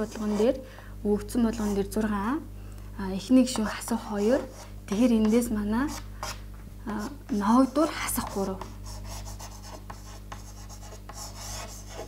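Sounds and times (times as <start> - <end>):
chalk scratching on blackboard: 0.0 - 0.6, 4.2 - 6.4, 7.0 - 12.0
steady low hum: 0.0 - 12.0.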